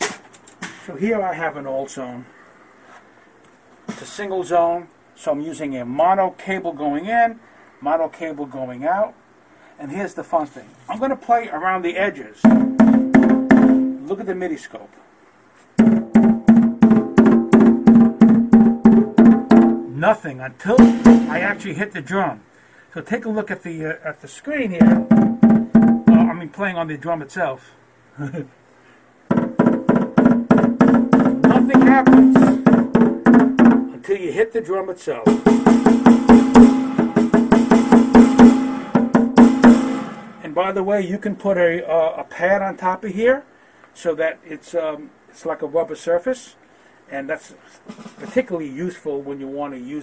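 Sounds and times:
snare drum struck with drumstick: 0:20.8 - 0:21.6, 0:29.3 - 0:33.9, 0:35.3 - 0:40.5.

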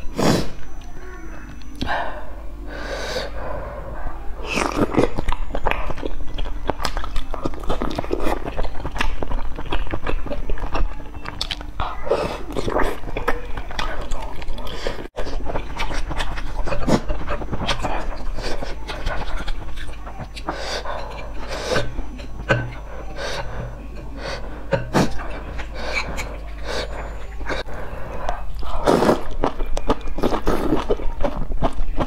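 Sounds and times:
noodles being chewed: 0:04.4 - 0:32.0
wet chewing and mouth smacks: 0:12.5 - 0:14.8.

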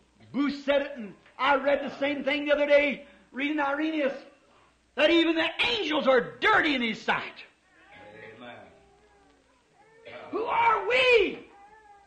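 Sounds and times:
preacher speaking: 0:00.3 - 0:04.4, 0:05.0 - 0:08.7, 0:10.1 - 0:11.5.

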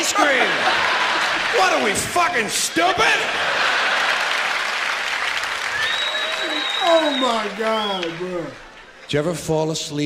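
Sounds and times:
audience laughing and applauding: 0:00.0 - 0:09.5.

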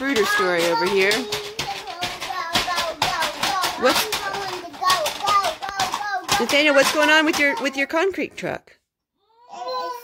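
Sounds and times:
child vocalising: 0:09.2 - 0:10.0.

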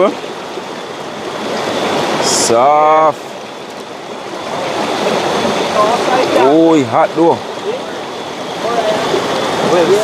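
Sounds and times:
river water rushing over rocks: 0:00.0 - 0:10.0.

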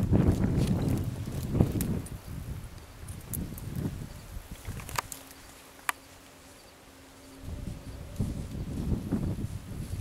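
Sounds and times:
rustling through dry brush: 0:00.0 - 0:10.0.

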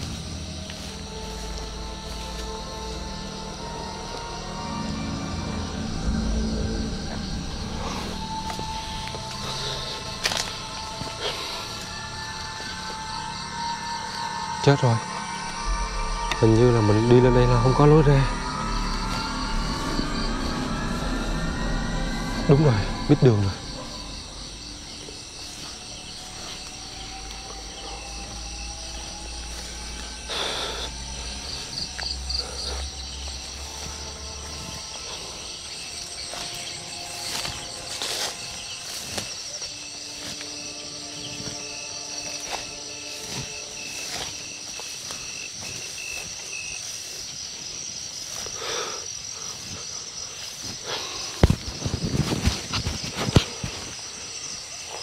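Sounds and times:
crickets and insects trilling: 0:00.0 - 0:55.0
steps rustling through undergrowth: 0:00.0 - 0:55.0.

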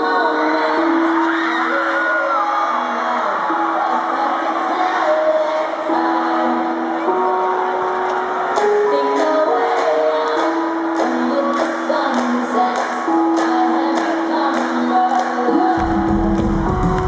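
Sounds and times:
crowd cheering and screaming: 0:00.0 - 0:17.0.

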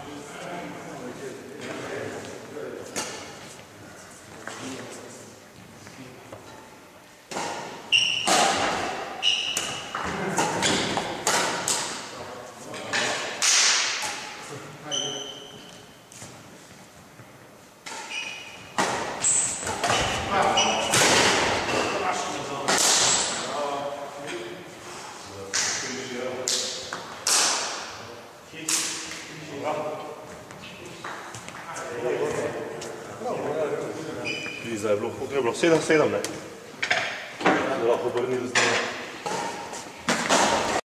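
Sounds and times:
men talking: 0:00.0 - 0:06.4, 0:10.0 - 0:13.3, 0:19.8 - 0:27.0, 0:27.9 - 0:36.6, 0:37.4 - 0:39.0
rackets hitting shuttlecock: 0:07.3 - 0:12.1, 0:12.9 - 0:14.4, 0:17.8 - 0:21.9, 0:22.6 - 0:23.3
high squeak: 0:07.9 - 0:08.3, 0:09.2 - 0:09.9, 0:34.2 - 0:34.7.

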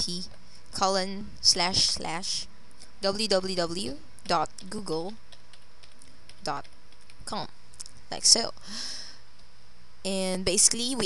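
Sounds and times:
keyboard keystroke clicks: 0:04.2 - 0:07.2.

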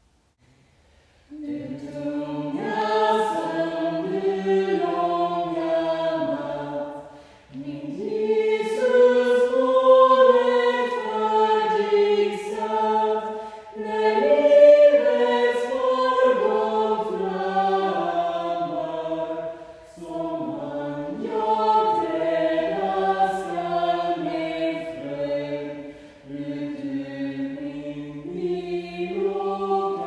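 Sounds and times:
choir singing in harmony: 0:01.3 - 0:30.0.

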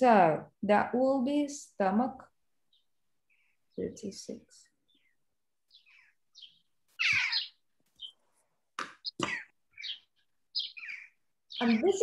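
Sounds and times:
bird chirping: 0:02.6 - 0:12.0.

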